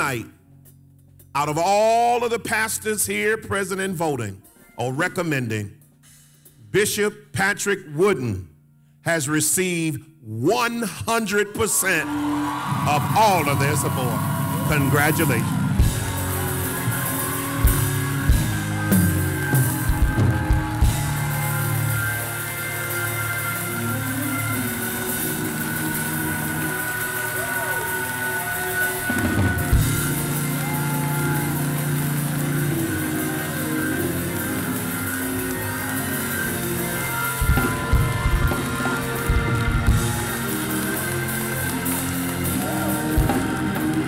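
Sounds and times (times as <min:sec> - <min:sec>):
band music: 0:10.4 - 0:44.0
drum kit: 0:12.7 - 0:44.0
sustained keyboard chords: 0:13.0 - 0:44.0.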